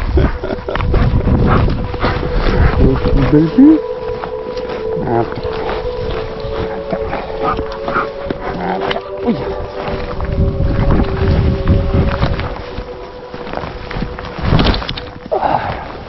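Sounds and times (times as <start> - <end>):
background music with held notes: 0.0 - 16.0.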